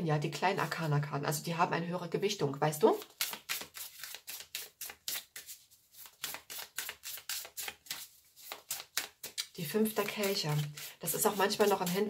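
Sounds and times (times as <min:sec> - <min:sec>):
cards being shuffled: 0:03.0 - 0:12.0.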